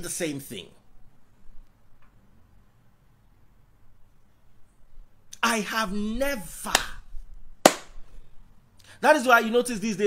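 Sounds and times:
sharp hand smack: 0:06.7 - 0:07.0, 0:07.7 - 0:08.0.

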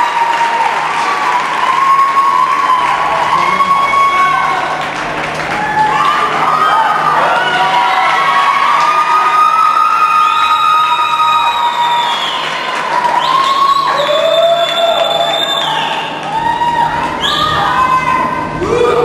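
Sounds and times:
audience cheering and whooping: 0:00.0 - 0:19.0
high shrieks: 0:01.6 - 0:04.8.

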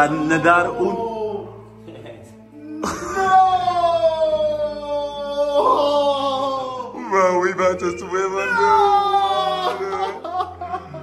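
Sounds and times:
man wailing: 0:02.6 - 0:07.4, 0:08.1 - 0:10.6.

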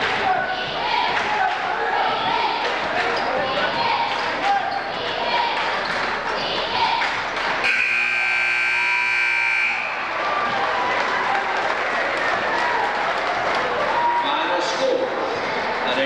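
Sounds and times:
crowd chatter: 0:00.0 - 0:16.0
scoreboard horn buzzing: 0:07.6 - 0:10.1.

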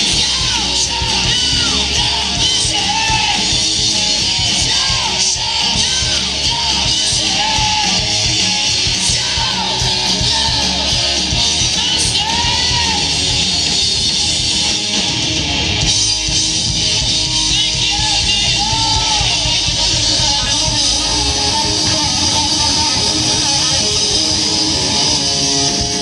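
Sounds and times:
live hard rock band: 0:00.0 - 0:26.0.

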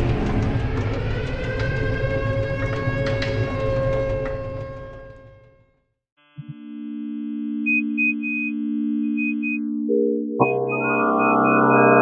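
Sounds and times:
electronic drone: 0:09.0 - 0:12.0
short high beeps: 0:10.4 - 0:12.0.

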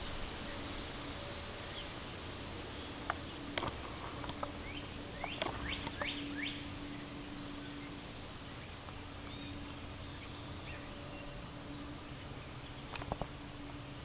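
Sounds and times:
low hum: 0:00.0 - 0:14.0
bird chirping: 0:02.7 - 0:13.9.

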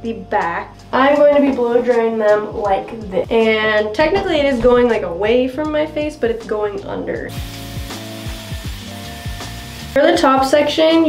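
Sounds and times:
background music with deep beat: 0:00.0 - 0:11.0
hot-air styling wand hissing: 0:07.3 - 0:10.8.

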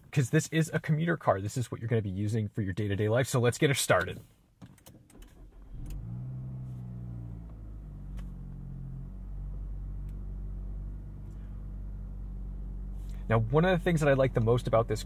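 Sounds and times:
car engine starting and idling: 0:04.9 - 0:15.0.

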